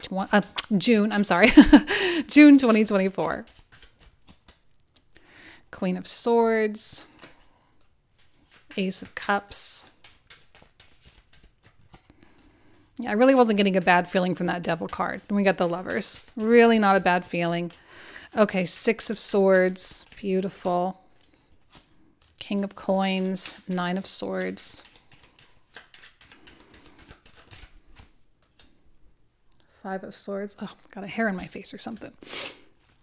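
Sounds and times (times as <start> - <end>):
cards rustling and clicking: 2.0 - 5.4, 7.0 - 29.0, 31.2 - 33.0.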